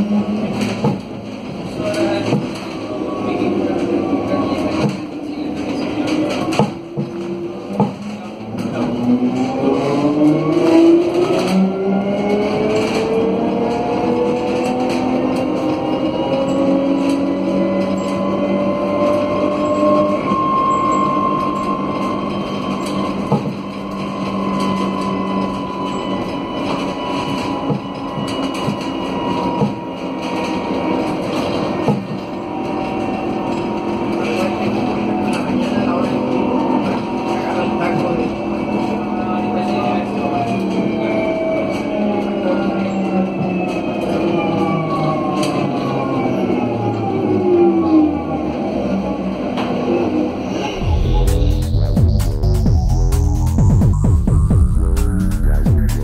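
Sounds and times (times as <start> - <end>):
knocks and rattles inside bus: 0.0 - 47.3
electric bus motors whining: 0.0 - 56.0
road noise: 0.0 - 56.0.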